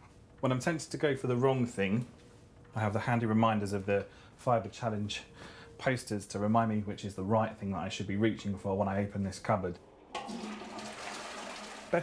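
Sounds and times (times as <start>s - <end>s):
toilet flushing: 9.8s - 12.0s.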